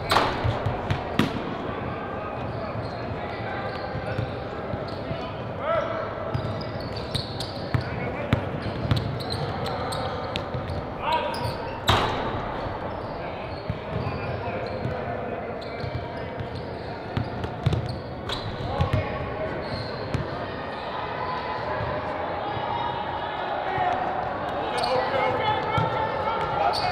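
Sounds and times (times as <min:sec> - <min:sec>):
voices echoing in a hall: 0:00.0 - 0:26.9.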